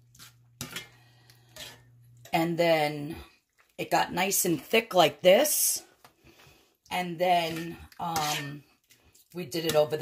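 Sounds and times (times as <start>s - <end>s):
metal spoon scraping skillet: 0.0s - 2.4s, 6.9s - 10.0s.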